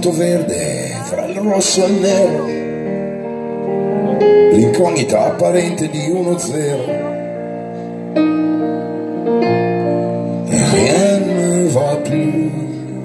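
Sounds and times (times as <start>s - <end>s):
electric keyboard chords: 0.0s - 13.0s
person singing: 0.4s - 2.9s, 10.5s - 13.0s.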